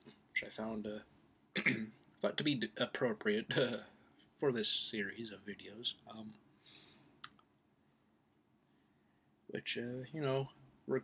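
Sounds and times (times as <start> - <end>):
man saying um: 0.4 - 1.0, 1.7 - 3.8, 4.4 - 6.3, 9.6 - 11.0
soft breath: 6.6 - 7.2.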